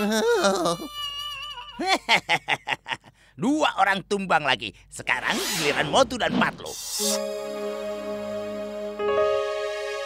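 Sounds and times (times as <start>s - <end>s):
cartoon voice laughing: 0.0s - 3.0s.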